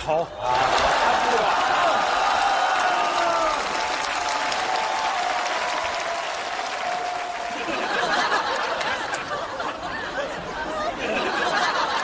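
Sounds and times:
audience applauding: 0.4s - 9.5s.

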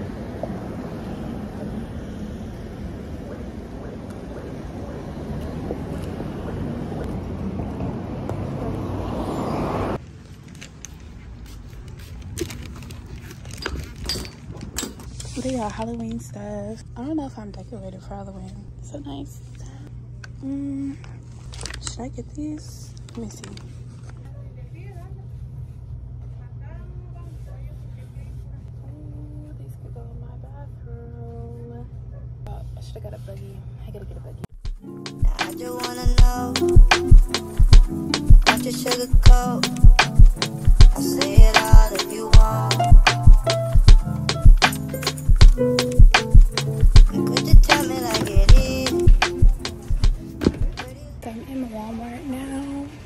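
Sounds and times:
air-handling hum: 0.0s - 7.8s, 35.0s - 51.3s
vehicle approaching: 0.0s - 13.2s
street traffic rumble: 0.0s - 16.9s, 35.5s - 53.0s.

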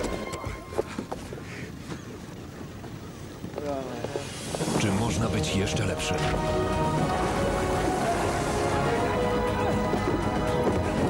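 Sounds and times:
sea noise: 0.0s - 11.0s
wind: 0.0s - 11.0s.

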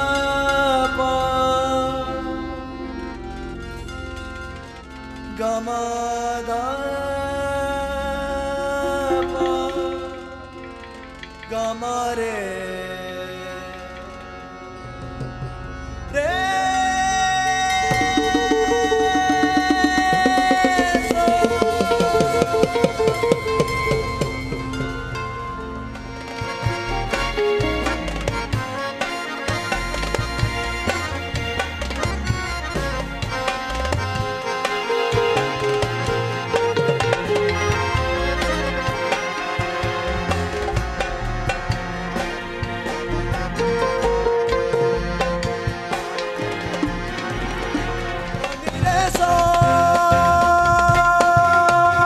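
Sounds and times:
held pitched notes: 0.0s - 7.3s, 8.1s - 12.2s, 13.6s - 51.1s
band accompaniment: 0.0s - 52.0s
man singing high note: 5.4s - 10.6s, 16.2s - 24.0s
plucked electric bass: 8.8s - 11.5s, 17.8s - 28.8s, 29.5s - 34.5s, 35.1s - 39.2s, 39.8s - 52.0s
rapid drum strokes: 17.8s - 44.4s.

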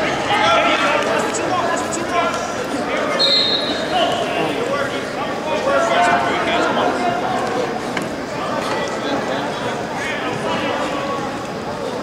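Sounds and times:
indistinct voices in gym hall: 0.0s - 12.0s.

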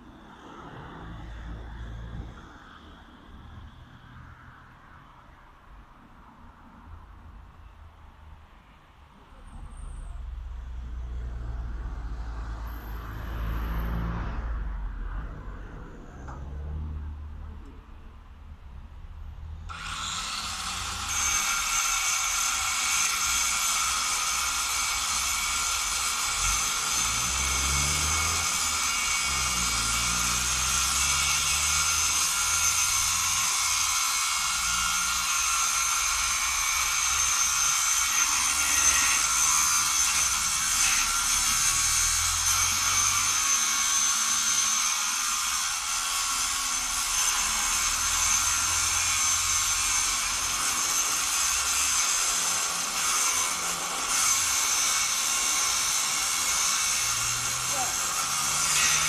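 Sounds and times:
angle grinder cutting metal: 19.7s - 59.0s.

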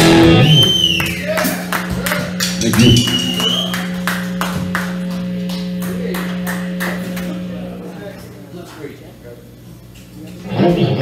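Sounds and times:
live rock band music: 0.0s - 0.6s, 1.5s - 7.8s.

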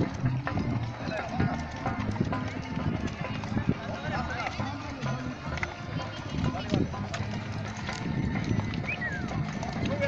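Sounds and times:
horse hooves clip-clopping: 0.0s - 10.0s
riders chattering: 0.0s - 10.0s.

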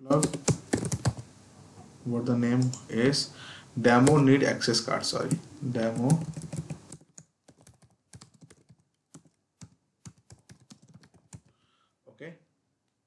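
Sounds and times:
typing on computer keyboard: 0.1s - 1.2s, 5.3s - 11.5s.

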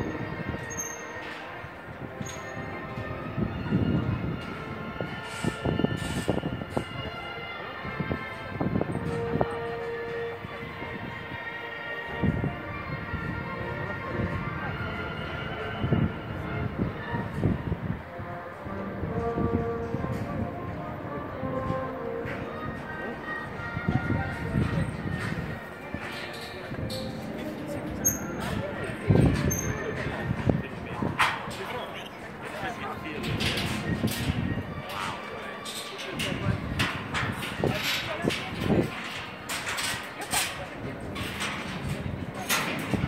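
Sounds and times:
wind gusting on microphone: 0.0s - 35.3s, 36.1s - 43.0s.

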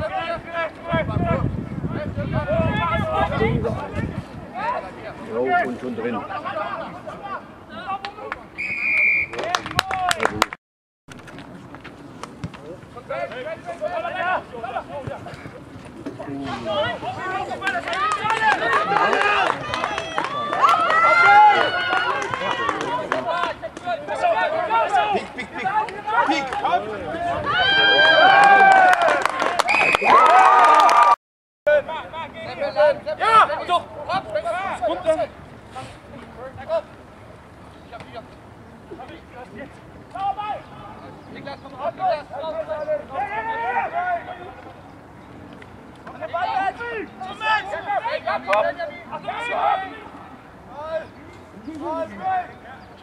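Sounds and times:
referee's whistle blast: 8.6s - 9.4s
spectators clapping: 9.3s - 10.6s, 17.6s - 23.9s, 28.0s - 31.2s
spectators shouting: 16.4s - 31.2s, 42.4s - 44.7s, 46.2s - 50.9s.

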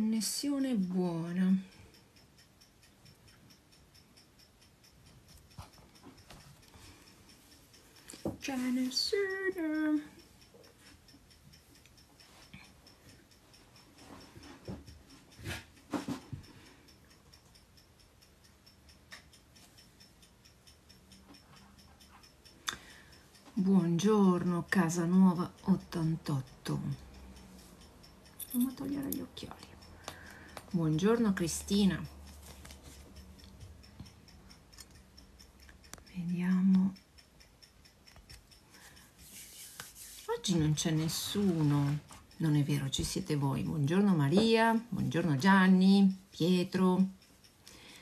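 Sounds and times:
clockwork ticking: 0.0s - 48.0s
hand rubbing phone microphone: 39.2s - 40.4s.

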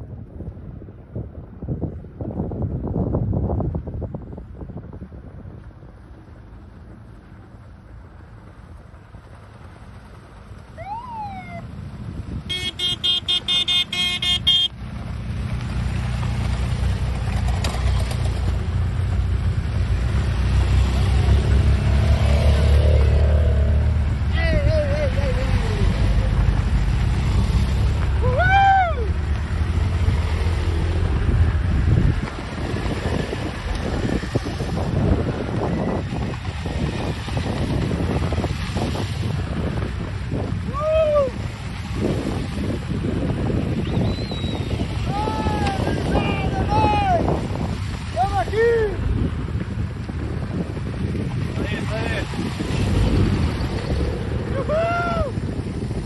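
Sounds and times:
horn short beeps: 12.5s - 14.7s
motorcycles riding past on gravel: 14.8s - 24.3s, 25.0s - 40.7s, 47.2s - 56.0s
voices calling out: 20.8s - 26.5s, 44.0s - 47.4s.

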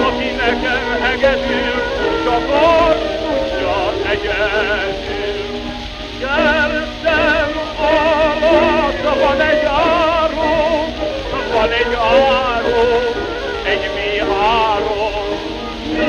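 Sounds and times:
band accompaniment: 0.0s - 16.0s
lead violin with wide vibrato: 0.0s - 16.0s.

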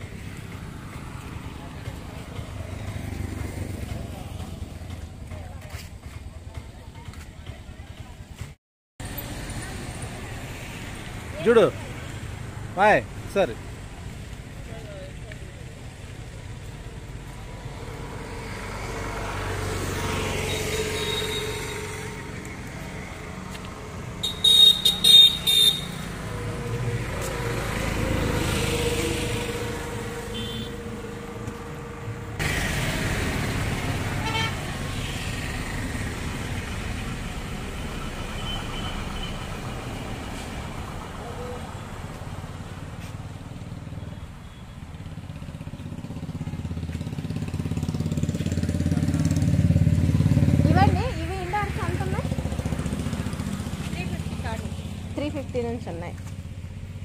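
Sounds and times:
road traffic going by: 0.0s - 57.0s.

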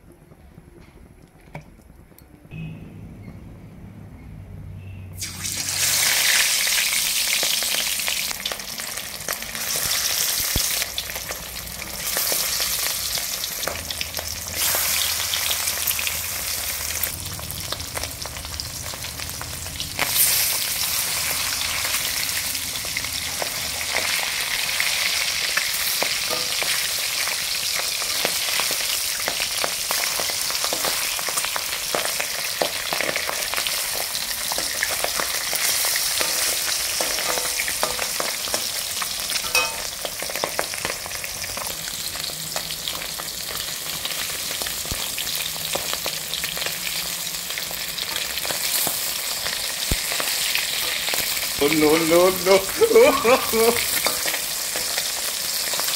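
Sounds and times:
fish sizzling in hot oil: 5.2s - 55.9s.

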